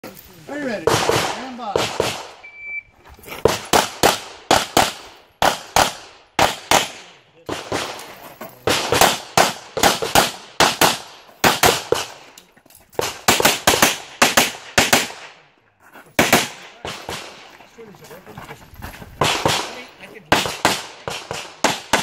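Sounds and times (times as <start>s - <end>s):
shot timer beep: 2.4s - 2.9s.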